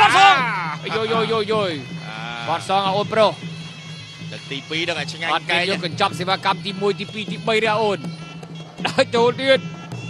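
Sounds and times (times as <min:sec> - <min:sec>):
man commentating excitedly: 0:00.0 - 0:03.1, 0:04.4 - 0:08.0.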